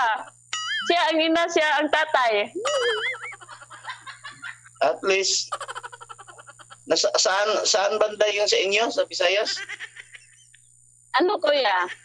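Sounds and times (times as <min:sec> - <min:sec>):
person laughing: 0:02.6 - 0:04.8, 0:05.5 - 0:06.9, 0:09.5 - 0:10.6.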